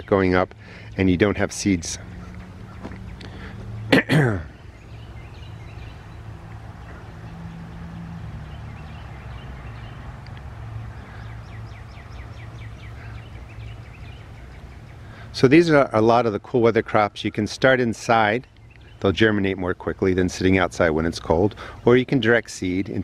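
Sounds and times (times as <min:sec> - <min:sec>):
steady low hum: 0:00.0 - 0:19.0
short loud vocal sound: 0:03.9 - 0:04.6.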